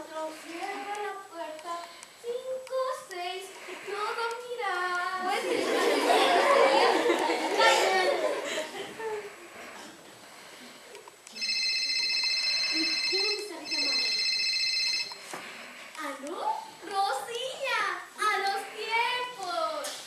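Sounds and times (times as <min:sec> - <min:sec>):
voices: 0:00.0 - 0:09.9
audience laughter: 0:05.2 - 0:09.4
electronic telephone ringtone: 0:11.4 - 0:15.3.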